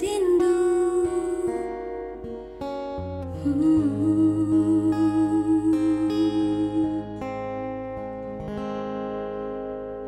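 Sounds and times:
fingerpicked acoustic guitar: 0.0s - 10.0s
woman humming: 3.4s - 7.2s.

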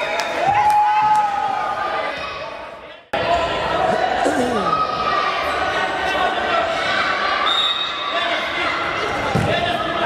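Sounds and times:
children's voices in hall: 1.8s - 7.4s.

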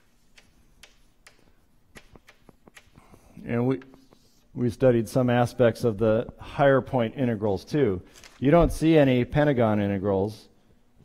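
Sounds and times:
chalk tapping on blackboard: 0.0s - 3.2s, 3.8s - 4.5s.

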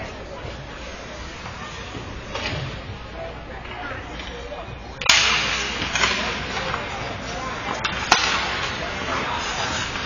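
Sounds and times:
hockey sticks clacking: 1.3s - 2.8s, 3.6s - 4.4s, 5.0s - 10.0s
sharp crack: 5.0s - 6.8s, 7.8s - 9.1s
skate blades scraping ice: 5.6s - 10.0s.

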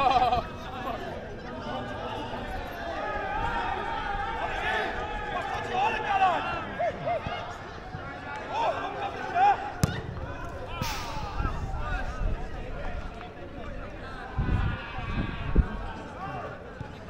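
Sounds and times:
football kick thud: 9.8s - 11.7s.

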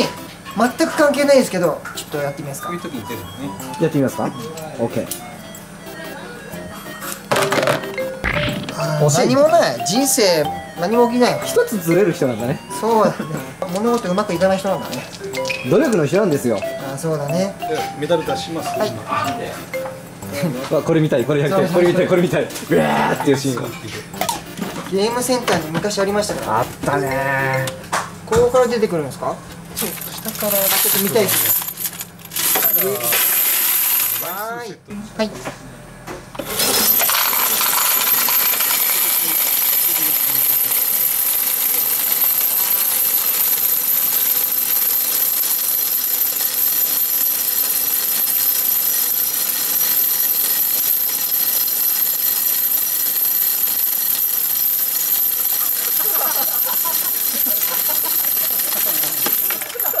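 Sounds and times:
steady high tone: 2.1s - 23.2s, 36.9s - 60.0s
metal medals clattering into cup: 29.8s - 34.4s, 36.5s - 60.0s.

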